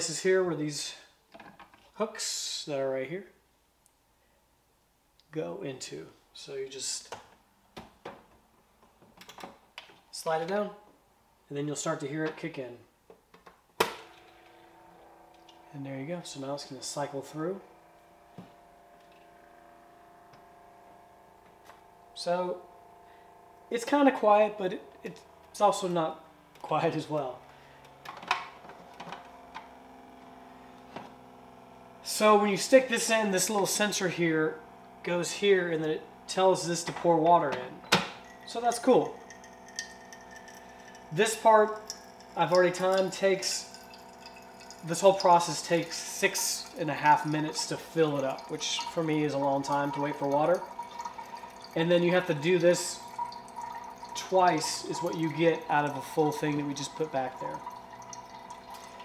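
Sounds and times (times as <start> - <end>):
water purifier pump humming: 13.8 - 59.0.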